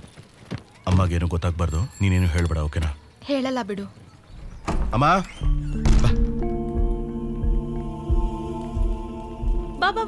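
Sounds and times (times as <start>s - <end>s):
soft film score: 0.8s - 10.0s
heavy thunk: 5.8s - 6.4s.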